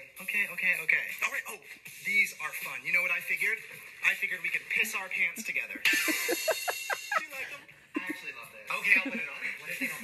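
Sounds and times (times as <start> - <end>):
people laughing: 5.8 - 10.0.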